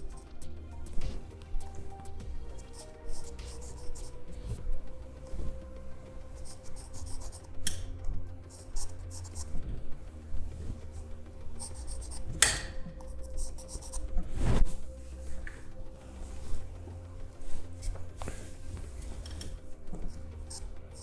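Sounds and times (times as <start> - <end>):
pencil scratching on paper: 0.0 - 7.9, 8.5 - 9.8, 10.6 - 12.4, 13.0 - 14.9, 16.5 - 21.0
low hum: 0.0 - 21.0.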